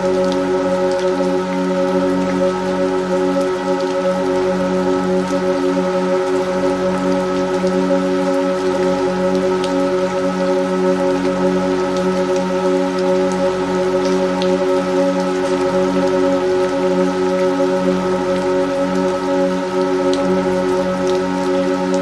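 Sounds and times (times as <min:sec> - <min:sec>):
steady rain: 0:00.0 - 0:22.0.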